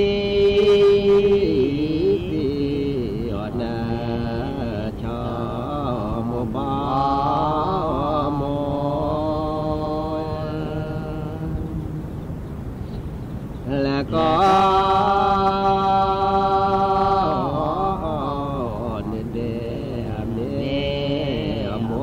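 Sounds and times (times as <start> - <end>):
person singing chant-like melody: 0.0 - 12.1, 13.7 - 22.0.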